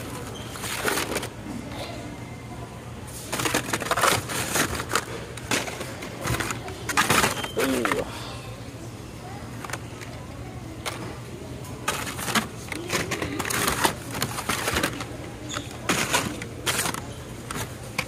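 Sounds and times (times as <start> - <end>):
blister packages rustling and clattering: 0.0 - 1.4, 3.1 - 8.1, 11.7 - 18.0.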